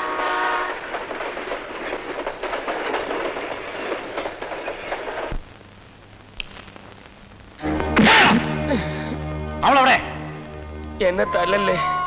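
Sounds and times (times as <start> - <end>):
train rushing past: 0.0 - 5.4
wheels clattering over rails: 0.6 - 5.4.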